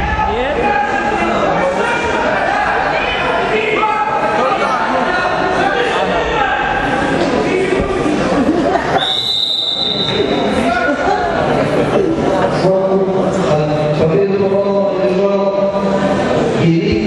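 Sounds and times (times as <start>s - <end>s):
crowd chattering in a hall: 0.0s - 17.0s
referee's whistle blast: 9.0s - 10.2s.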